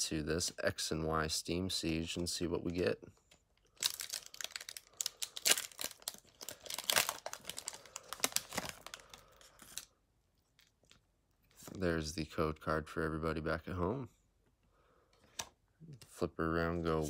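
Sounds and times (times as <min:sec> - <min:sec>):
foil wrapper tearing and crinkling: 0:03.7 - 0:09.9.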